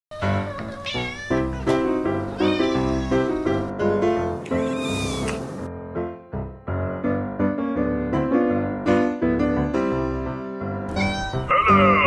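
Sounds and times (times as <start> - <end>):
cat meowing: 0.1 - 5.5, 10.9 - 12.0.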